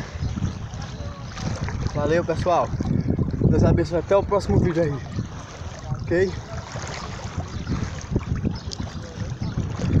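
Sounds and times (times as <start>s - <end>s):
water sloshing and splashing: 0.0s - 10.0s
wind buffeting microphone: 0.0s - 10.0s.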